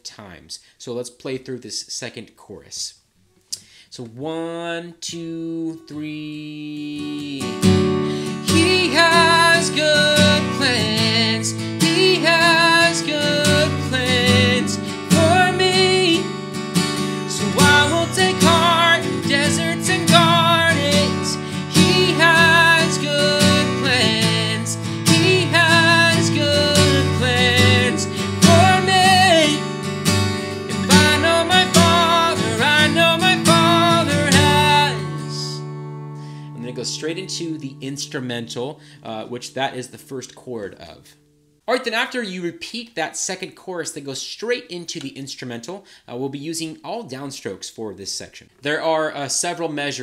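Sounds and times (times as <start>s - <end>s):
man singing: 3.9s - 16.3s, 17.0s - 35.7s, 36.6s - 39.9s
acoustic guitar strumming: 5.8s - 41.6s.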